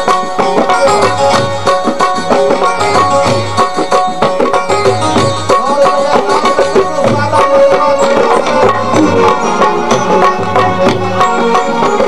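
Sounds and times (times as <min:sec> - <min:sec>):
tabla playing a rhythm: 0:00.0 - 0:12.0.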